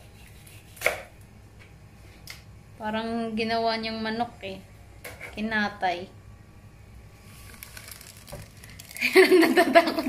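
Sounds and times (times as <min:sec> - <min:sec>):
knife chopping on cutting board: 0:00.7 - 0:01.1.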